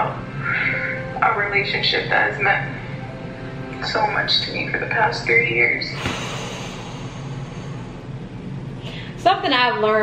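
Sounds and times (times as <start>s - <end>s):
low hum: 0.0s - 9.2s.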